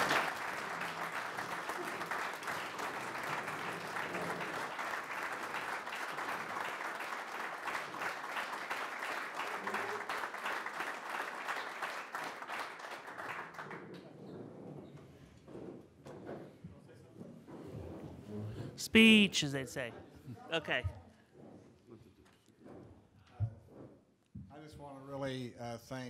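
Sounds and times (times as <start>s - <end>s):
audience applauding: 0.0s - 14.0s, 18.9s - 19.9s.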